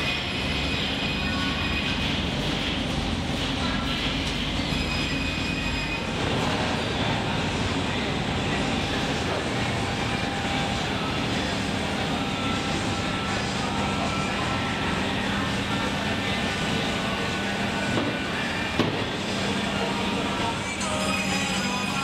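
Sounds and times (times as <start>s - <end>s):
workshop machinery rushing noise: 0.0s - 22.0s
thin machine whines: 18.3s - 22.0s.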